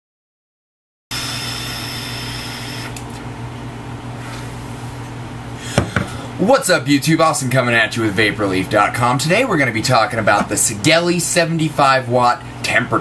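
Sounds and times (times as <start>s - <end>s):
person exhaling vapor: 5.6s - 6.4s.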